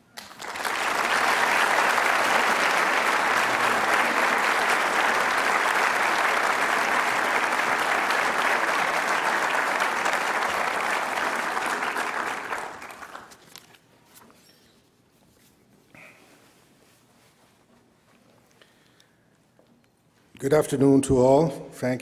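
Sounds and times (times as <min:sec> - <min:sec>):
audience applauding: 0:00.0 - 0:13.4.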